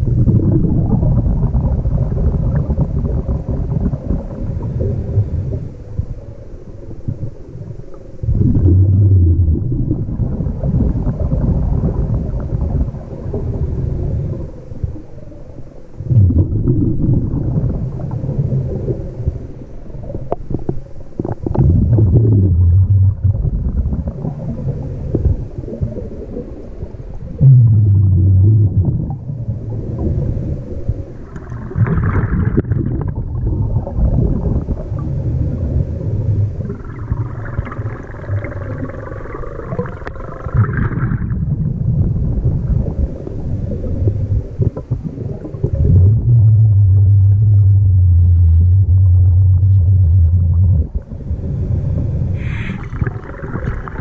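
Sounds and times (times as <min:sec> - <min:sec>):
exhaled bubbles burbling: 0:00.0 - 0:06.2, 0:07.0 - 0:15.0, 0:16.0 - 0:54.0
regulator inhale hiss: 0:04.4 - 0:06.3, 0:13.0 - 0:16.0, 0:17.9 - 0:19.7, 0:24.2 - 0:26.0, 0:29.4 - 0:31.3, 0:34.8 - 0:36.7, 0:43.0 - 0:44.8, 0:51.0 - 0:53.2.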